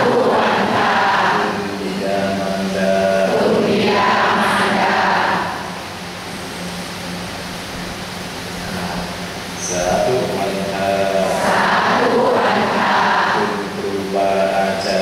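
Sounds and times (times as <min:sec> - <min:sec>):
voices chanting on one pitch: 0:00.0 - 0:05.8, 0:08.7 - 0:15.0.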